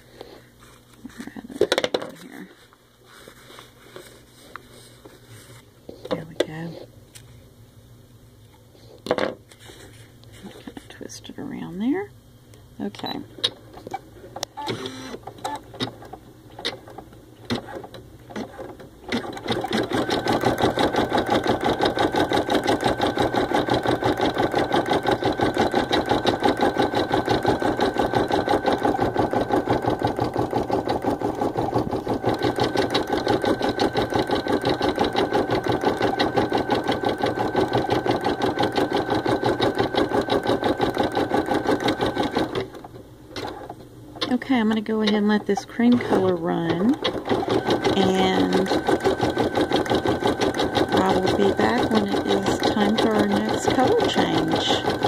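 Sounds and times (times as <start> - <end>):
embroidery machine stitching: 14.6 - 55.0.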